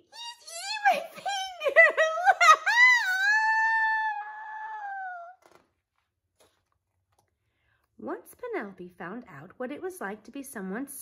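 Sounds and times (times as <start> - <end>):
woman wailing: 0.0 - 5.4.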